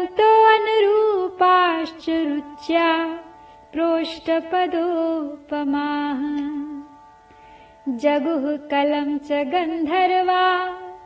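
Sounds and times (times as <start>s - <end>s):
faint musical accompaniment: 0.0s - 11.0s.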